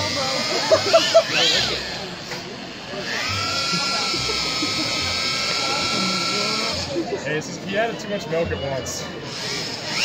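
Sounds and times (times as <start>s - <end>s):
electric drill mixing paddle churning: 0.0s - 7.1s, 9.2s - 10.0s.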